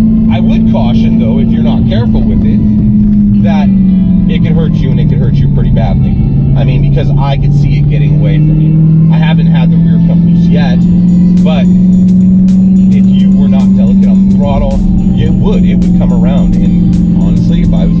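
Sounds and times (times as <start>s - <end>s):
car engine drone from cabin: 0.0s - 18.0s
music with wavering notes: 0.0s - 18.0s.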